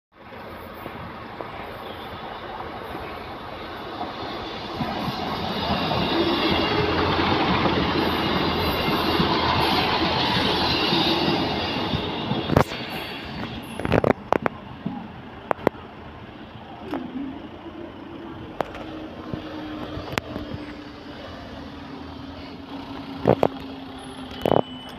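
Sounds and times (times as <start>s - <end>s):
train engine and wheels rumble: 0.2s - 24.9s.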